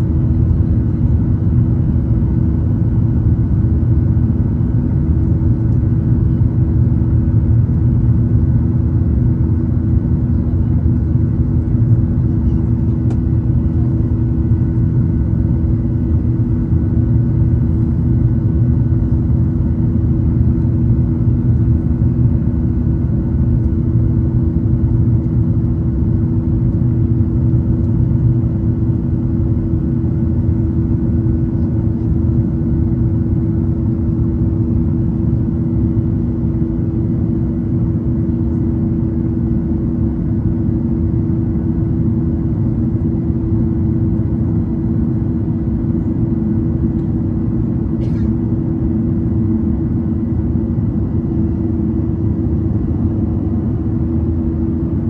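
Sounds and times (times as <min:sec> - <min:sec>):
airliner cabin engine drone: 0:00.0 - 0:55.0
constant humming tones: 0:00.0 - 0:55.0.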